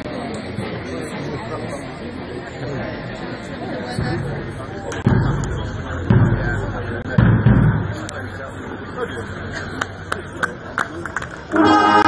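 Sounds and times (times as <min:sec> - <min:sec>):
crowd chatter: 0:00.0 - 0:12.0
bass drum low thuds: 0:04.0 - 0:08.1.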